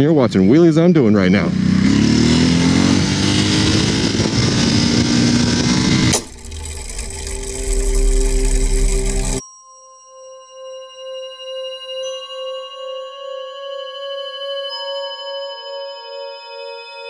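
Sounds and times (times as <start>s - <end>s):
motorcycle engine revving: 1.2s - 9.4s.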